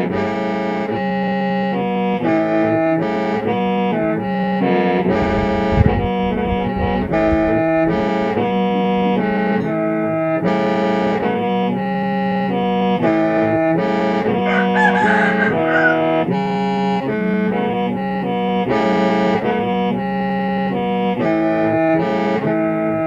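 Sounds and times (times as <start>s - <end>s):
bamboo mouth organ playing: 0.0s - 23.0s.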